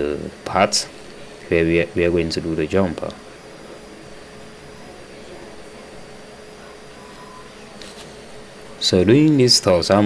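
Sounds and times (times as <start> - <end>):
faint high whines: 0.0 - 10.0
mechanical hum and hiss: 0.0 - 10.0.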